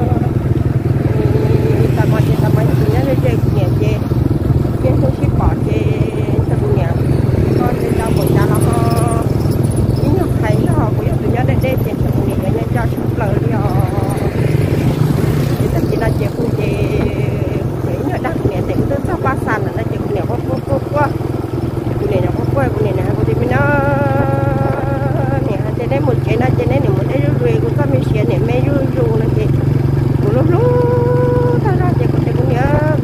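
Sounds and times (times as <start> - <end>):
woman talking: 0.0 - 0.5, 1.1 - 4.1, 4.8 - 14.6, 15.5 - 21.2, 21.9 - 33.0
small motorcycle engine running: 0.0 - 33.0.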